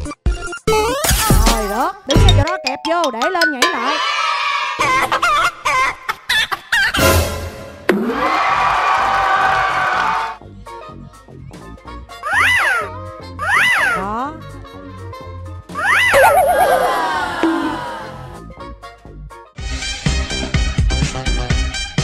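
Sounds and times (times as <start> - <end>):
background music: 0.7 - 5.2, 7.0 - 8.5, 10.0 - 22.0
laughter and cheering: 8.0 - 10.4, 15.8 - 18.4
cartoon chicken clucking: 15.8 - 18.1.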